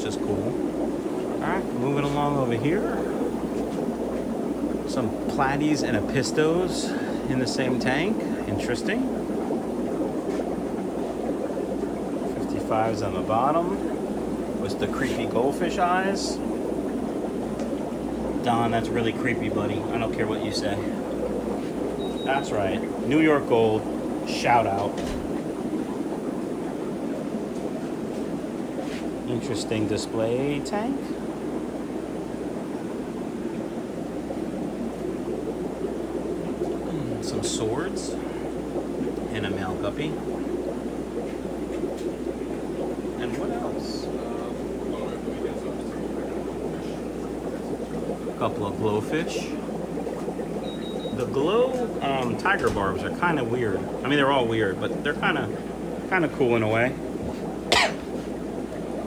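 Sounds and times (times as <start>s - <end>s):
aquarium air pumps hissing: 0.0s - 59.0s
filters bubbling: 0.0s - 59.0s
person coughing: 57.7s - 58.1s.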